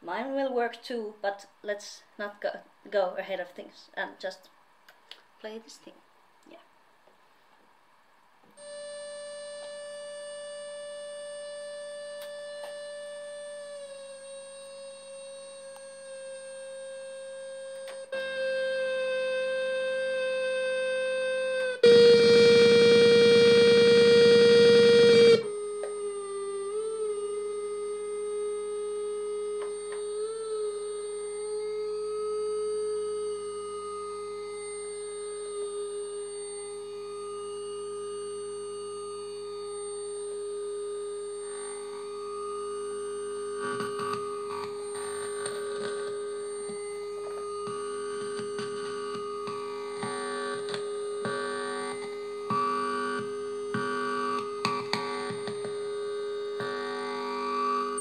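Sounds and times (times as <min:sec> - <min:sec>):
loud buzzy synthesizer tone: 0:08.6 - 0:58.0
synthesizer drone: 0:08.6 - 0:58.0.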